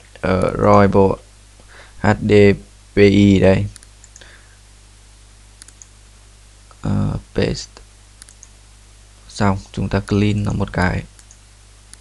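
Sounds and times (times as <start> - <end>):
person speaking: 0.0 - 1.2, 2.0 - 3.8, 6.7 - 7.9, 9.3 - 11.2
low electrical hum: 0.0 - 12.0
computer mouse clicks: 3.7 - 4.3, 5.6 - 5.9, 8.2 - 8.6, 11.1 - 12.0.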